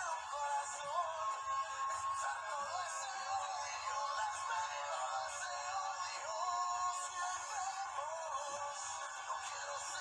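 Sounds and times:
man singing: 0.0 - 10.0.

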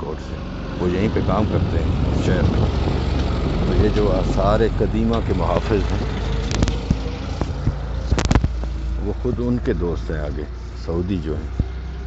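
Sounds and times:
car driving low rumble: 0.0 - 12.0.

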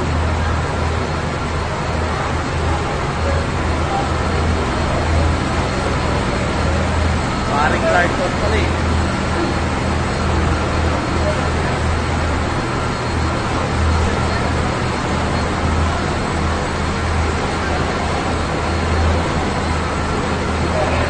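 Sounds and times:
crowd chatter: 0.0 - 21.0.

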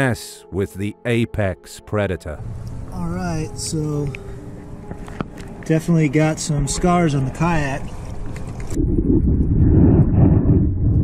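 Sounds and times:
water rumbling underwater: 8.2 - 11.0.

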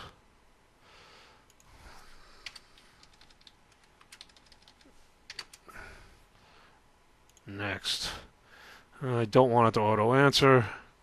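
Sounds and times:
faint keyboard typing: 1.4 - 5.8, 7.2 - 7.5.

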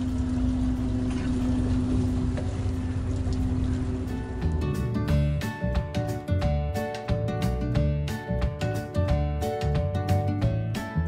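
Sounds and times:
boat engine running: 0.0 - 11.0.

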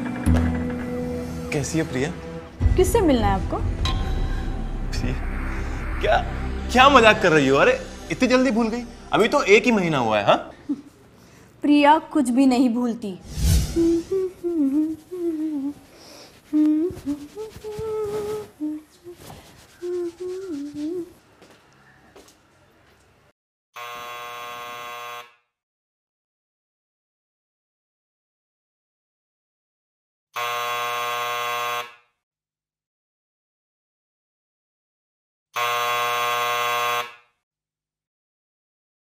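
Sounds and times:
woman humming a tune: 13.7 - 21.2
electric doorbell buzzing: 23.8 - 25.4, 30.4 - 32.0, 35.6 - 37.3.

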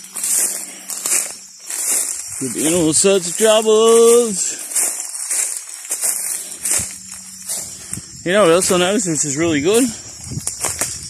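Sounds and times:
footsteps crunching dry grass: 0.0 - 11.0
insects calling: 0.0 - 11.0.

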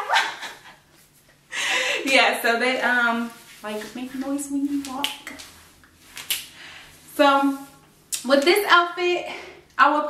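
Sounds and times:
woman laughing: 0.0 - 0.8.

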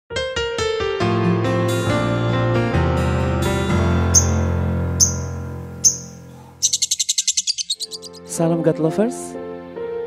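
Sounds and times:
high-pitched chirping trill: 4.2 - 8.3.

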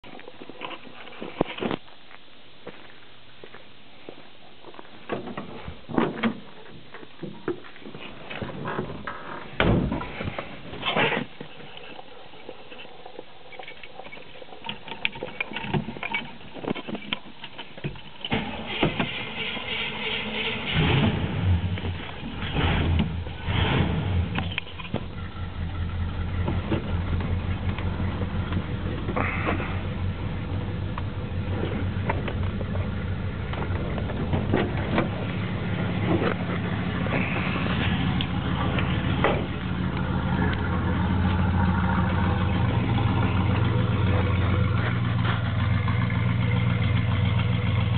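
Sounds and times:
car engine cranking and starting: 7.5 - 47.9
car engine idling: 18.3 - 47.9.

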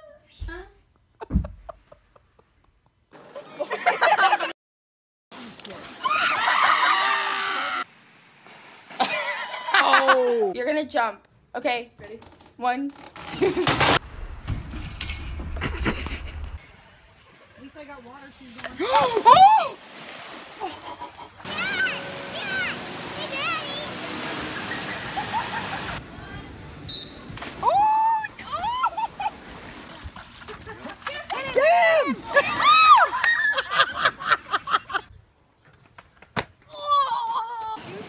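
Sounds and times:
young men yelling and laughing: 6.0 - 7.8, 9.1 - 10.6, 18.8 - 19.8, 20.6 - 26.0, 27.6 - 29.4, 30.6 - 35.1
water rushing down a slide: 21.4 - 26.0.

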